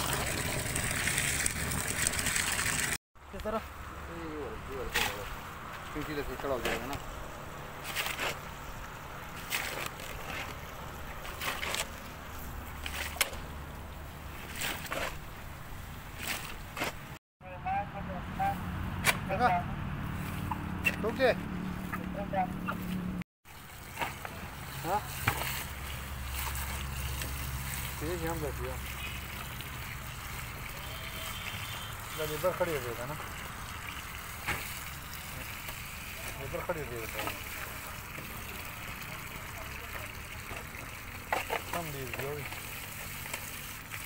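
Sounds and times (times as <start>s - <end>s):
water pouring from hose: 0.0s - 3.0s, 7.8s - 15.3s, 23.5s - 44.0s
shovel scraping through soil: 7.8s - 8.5s, 9.4s - 10.6s, 11.2s - 12.0s, 14.4s - 15.2s.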